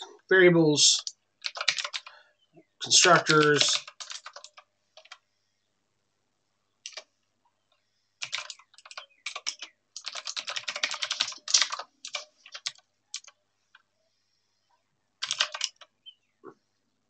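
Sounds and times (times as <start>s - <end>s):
typing on computer keyboard: 1.0s - 2.2s, 3.3s - 5.2s, 6.8s - 7.1s, 8.2s - 13.8s, 15.2s - 16.0s.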